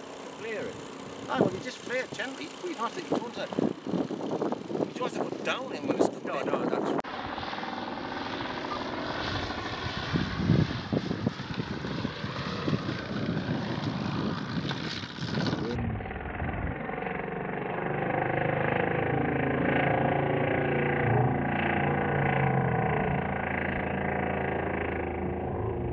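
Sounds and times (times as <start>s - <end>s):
model plane engine and propeller: 0.0s - 25.9s.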